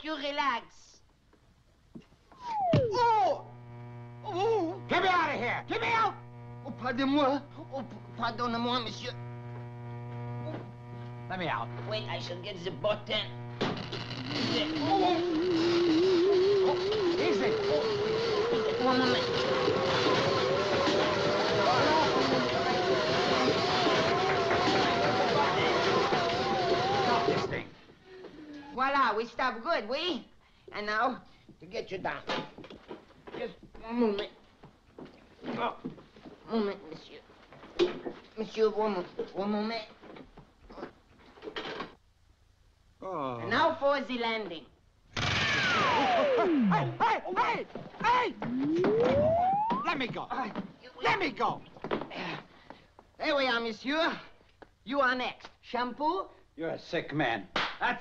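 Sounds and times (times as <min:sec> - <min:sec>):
motorized chair whining: 0:02.4 - 0:28.7, 0:48.1 - 0:50.0.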